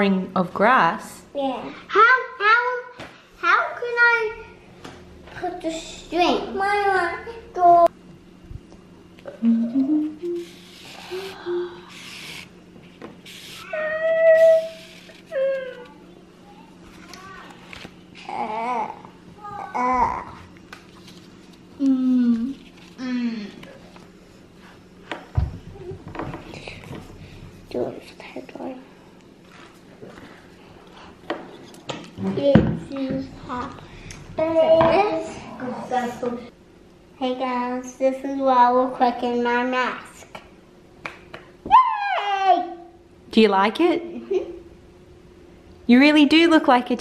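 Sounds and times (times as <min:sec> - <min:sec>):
voice humming low: 0:09.2 - 0:12.3, 0:21.8 - 0:23.8, 0:32.2 - 0:36.0
person vocalizing: 0:09.3 - 0:11.9
high cry: 0:41.6 - 0:42.9.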